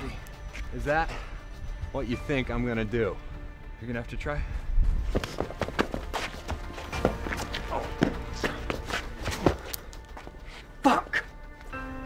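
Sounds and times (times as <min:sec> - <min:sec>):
shoes scuffing on concrete: 0:05.1 - 0:10.6.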